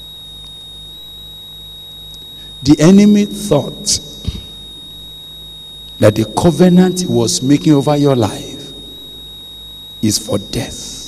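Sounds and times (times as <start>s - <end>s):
electrical hum and hiss: 0.0s - 11.0s
high-pitched whine: 0.0s - 11.0s.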